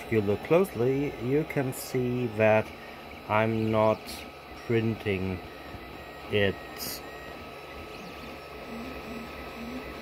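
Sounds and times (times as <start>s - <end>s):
printer hum: 0.0s - 10.0s
stepper motor tones: 0.0s - 10.0s.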